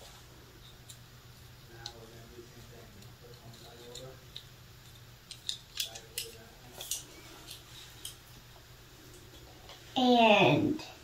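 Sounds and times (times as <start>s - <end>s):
sharp clicks and light crinkles: 0.6s - 8.4s
faint muffled voices: 1.6s - 4.4s.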